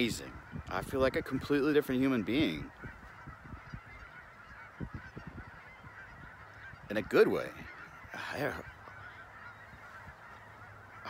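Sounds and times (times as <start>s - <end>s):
distant geese honking: 0.0s - 11.0s.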